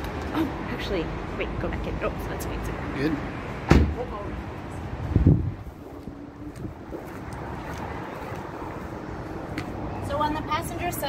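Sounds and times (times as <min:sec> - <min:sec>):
distant road traffic: 0:00.0 - 0:11.0
wind noise on microphone: 0:04.6 - 0:09.9
footsteps on pavement: 0:05.6 - 0:09.8.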